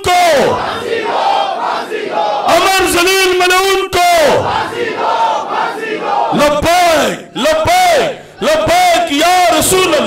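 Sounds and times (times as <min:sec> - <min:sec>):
man shouting through a microphone: 0:00.0 - 0:00.7, 0:02.4 - 0:04.6, 0:06.3 - 0:10.0
crowd shouting in unison: 0:00.2 - 0:02.6, 0:04.2 - 0:06.4.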